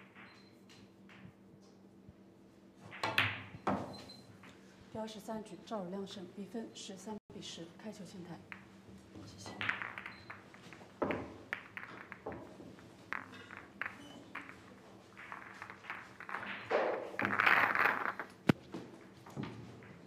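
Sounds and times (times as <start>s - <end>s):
sharp clack of pool balls: 2.9s - 4.6s, 8.5s - 18.6s
pool balls clicking together: 8.5s - 20.0s.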